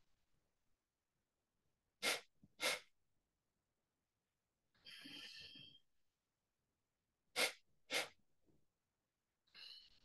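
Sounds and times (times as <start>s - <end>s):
forceful nasal exhalations: 2.0s - 2.9s.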